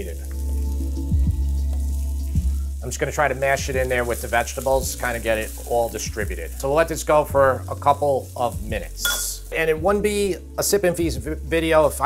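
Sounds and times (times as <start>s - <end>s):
vegetables frying in a pan: 0.0s - 10.7s
soft background music: 0.0s - 12.0s.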